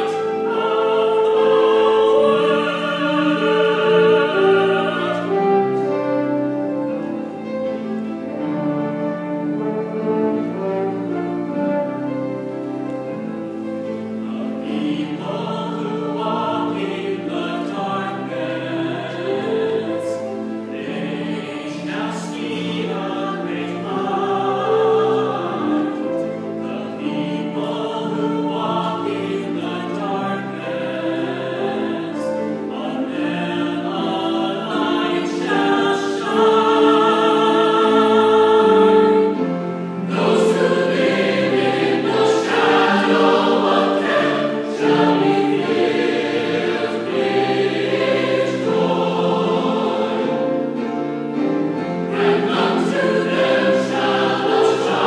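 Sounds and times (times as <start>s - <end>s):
choir singing: 0.0s - 55.0s.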